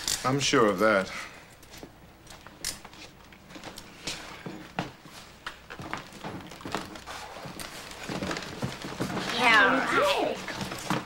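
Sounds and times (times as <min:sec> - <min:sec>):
footsteps and shuffling: 0:01.7 - 0:11.0.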